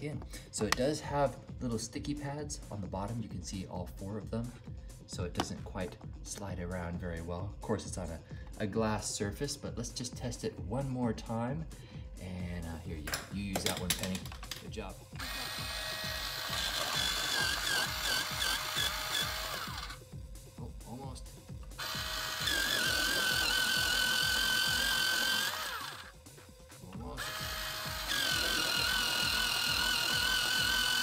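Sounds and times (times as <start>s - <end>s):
electric pencil sharpener whining: 15.2s - 20.0s, 21.8s - 26.2s, 27.0s - 31.0s.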